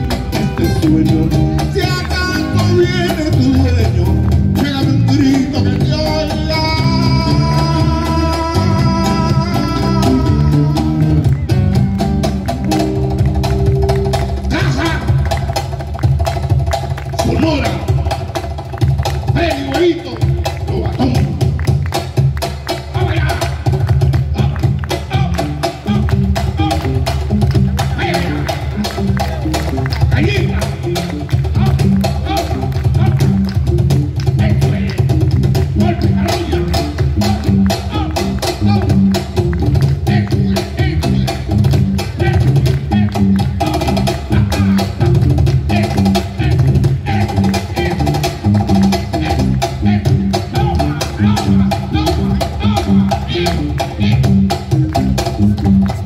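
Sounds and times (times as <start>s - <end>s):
cajon drum rhythm: 0.0s - 56.0s
guitars playing: 0.0s - 56.0s
hand clapping: 9.8s - 49.9s, 52.3s - 56.0s.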